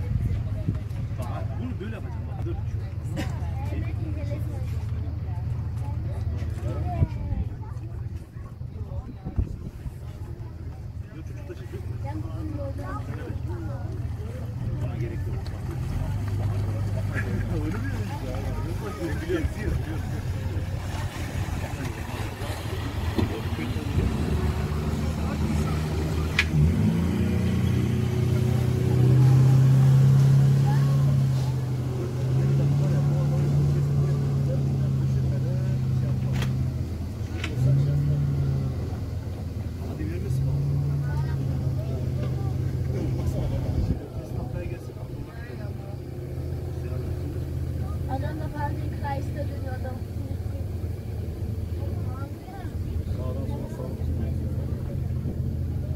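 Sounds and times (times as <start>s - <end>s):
motorboat engine drone: 0.0s - 55.9s
wind: 0.0s - 55.9s
rushing water: 9.6s - 55.9s.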